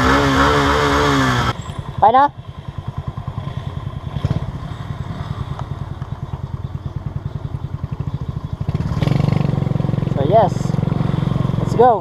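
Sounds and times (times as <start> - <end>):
motorcycle engine idling: 0.8 - 12.0.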